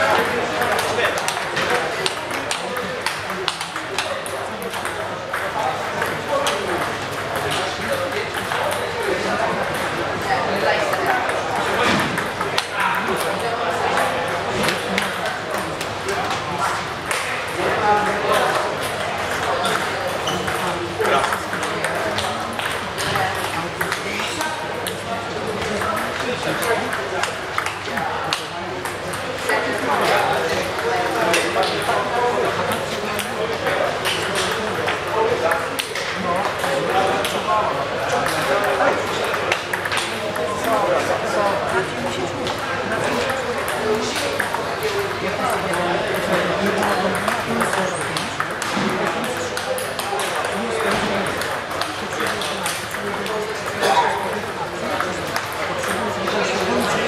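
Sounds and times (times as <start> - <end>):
murmur of voices: 0.0 - 57.0
table tennis balls clicking: 0.1 - 57.0.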